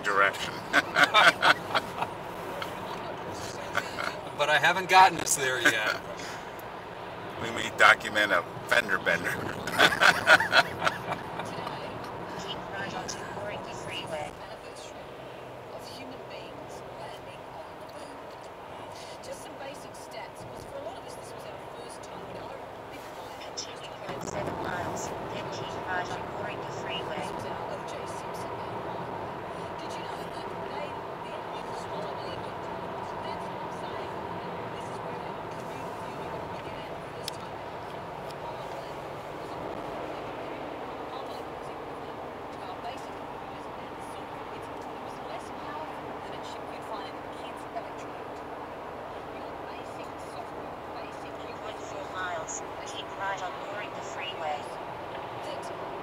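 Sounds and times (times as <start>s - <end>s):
indistinct voice talking: 0.0s - 2.0s, 2.6s - 6.4s, 7.4s - 14.3s
car road and engine noise: 0.0s - 56.0s.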